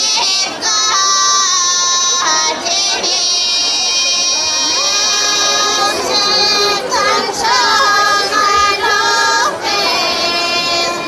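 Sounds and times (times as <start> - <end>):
women singing polyphonic folk song: 0.0 - 11.0.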